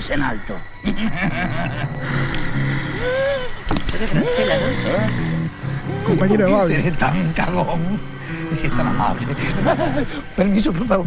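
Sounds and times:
noisy rumble: 0.0s - 11.0s
low hum: 0.7s - 10.8s
man's voice: 3.9s - 5.2s, 5.9s - 11.0s.

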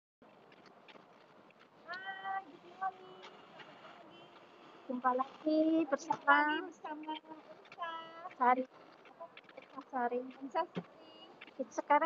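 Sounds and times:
background hubbub: 1.4s - 12.0s.

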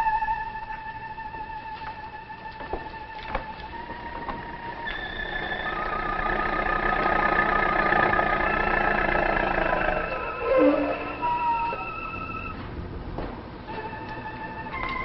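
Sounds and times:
held wavering high tones: 0.0s - 12.6s.

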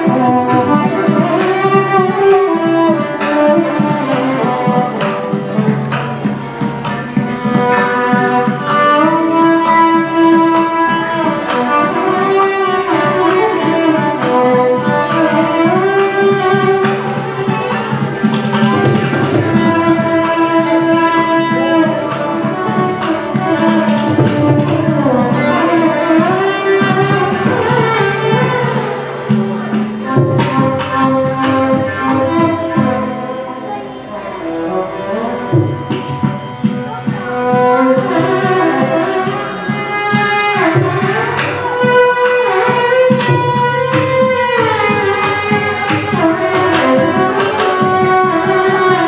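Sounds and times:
violin ornamented melody: 0.0s - 49.0s.

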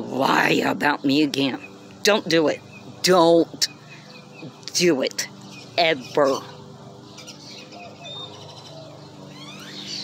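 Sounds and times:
low background hum: 0.0s - 10.0s
faint bird chirps: 5.4s - 10.0s.

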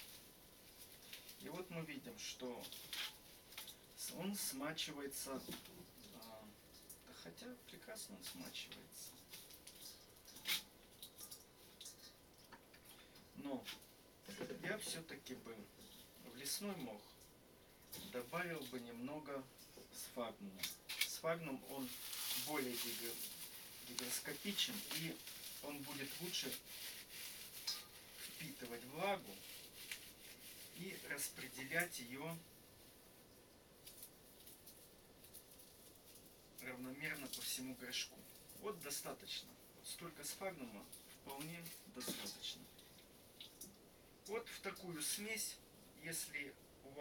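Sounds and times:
hands rustling dried moss: 0.0s - 7.2s, 20.9s - 43.6s
soft ticks of falling bits: 2.6s - 3.8s, 8.3s - 13.9s
dry moss crackling in fingers: 20.6s - 32.4s.

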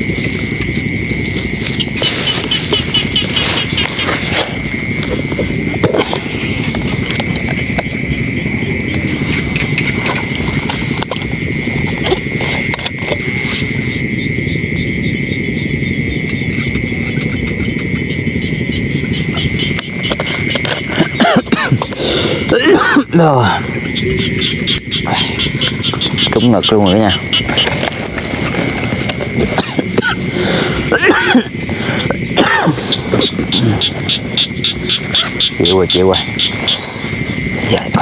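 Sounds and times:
low rumbling noise: 0.0s - 38.0s
night insects trilling: 0.0s - 38.0s.

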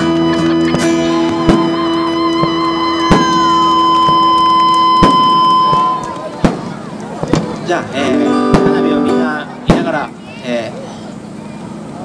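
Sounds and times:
fireworks bangs: 0.0s - 10.2s.

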